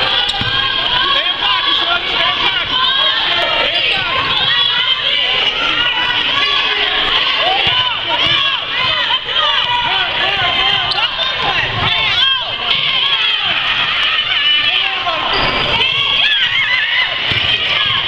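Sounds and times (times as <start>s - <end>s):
basketball bouncing: 0.2s - 0.6s, 7.6s - 9.0s, 17.2s - 18.0s.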